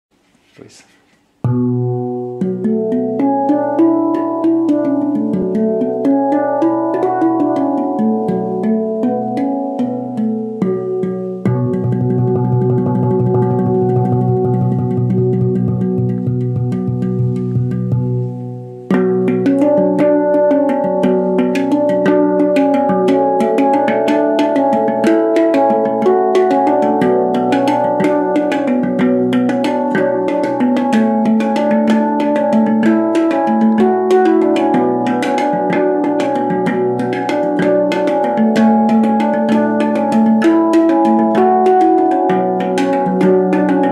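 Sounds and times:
handpan notes played by fingers: 1.4 - 43.9.

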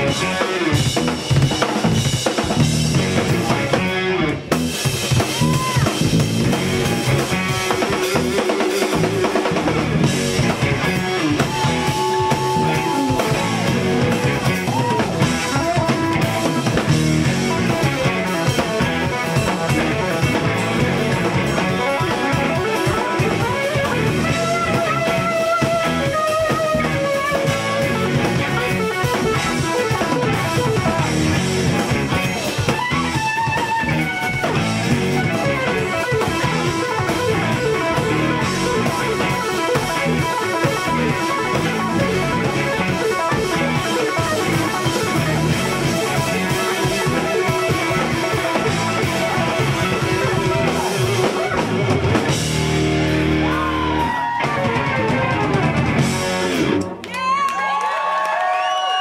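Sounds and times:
live instrumental rock band: 0.0 - 59.0.

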